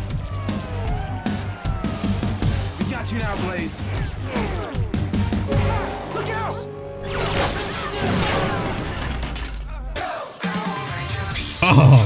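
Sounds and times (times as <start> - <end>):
action soundtrack music: 0.0 - 9.4
person speaking: 11.6 - 12.0.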